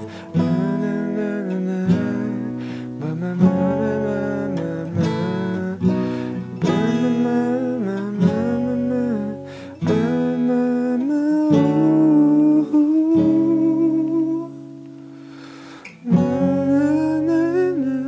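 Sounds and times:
person singing: 0.0s - 14.8s, 15.4s - 18.0s
acoustic guitar chords: 0.0s - 18.0s.

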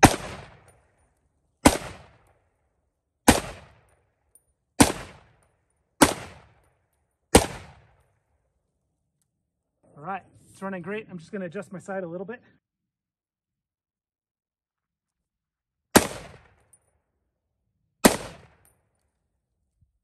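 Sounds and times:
rifle shots with echo: 0.0s - 1.0s, 1.6s - 2.4s, 3.3s - 4.0s, 4.8s - 6.7s, 7.3s - 8.1s, 15.9s - 16.6s, 18.0s - 18.7s.

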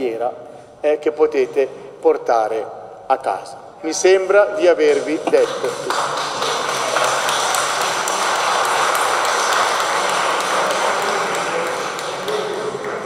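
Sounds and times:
people applauding: 5.3s - 13.0s.

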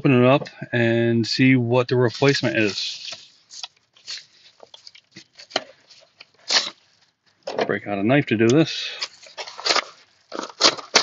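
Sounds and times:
paper mailer crinkling and tearing: 2.0s - 6.9s, 8.8s - 11.0s.

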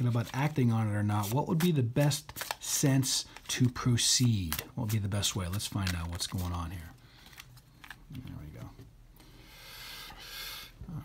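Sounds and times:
cards rustling and sliding: 0.0s - 8.8s.

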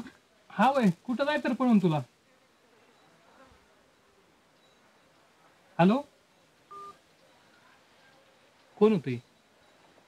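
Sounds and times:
mobile phone beep: 6.7s - 7.0s, 9.2s - 10.0s.

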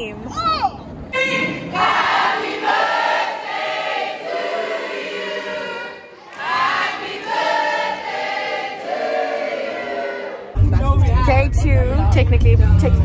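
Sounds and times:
group singing in unison: 1.7s - 11.2s.

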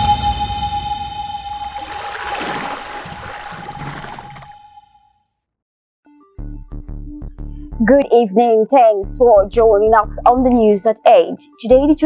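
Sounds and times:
high held tone: 0.0s - 5.0s.

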